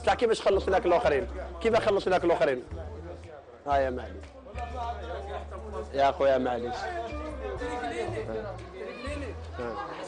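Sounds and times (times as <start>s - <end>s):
background music bass notes: 0.0s - 9.8s
people chattering: 0.0s - 10.0s.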